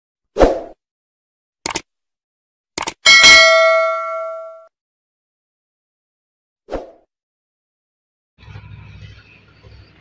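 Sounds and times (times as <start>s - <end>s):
bell ding: 3.1s - 4.7s.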